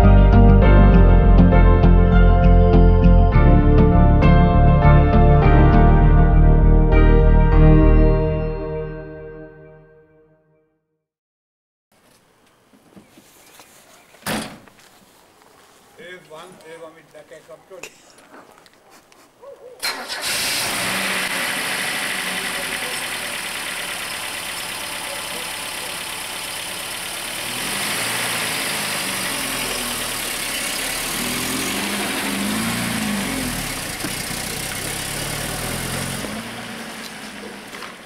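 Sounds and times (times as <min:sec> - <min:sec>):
car engine revving: 0:19.9 - 0:38.0.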